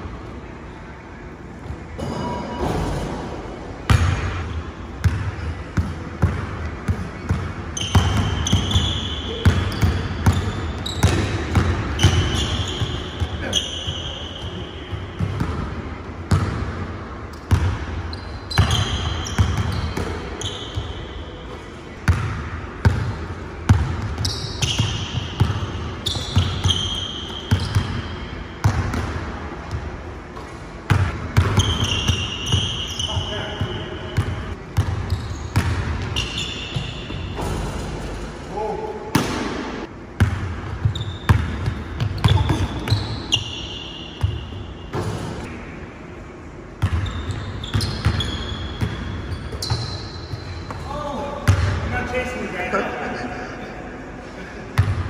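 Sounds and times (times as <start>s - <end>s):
sneakers squeaking on wood: 7.2s - 14.9s, 17.5s - 21.2s, 24.2s - 28.1s, 31.4s - 34.4s, 35.0s - 37.6s, 40.8s - 45.2s, 46.8s - 51.6s.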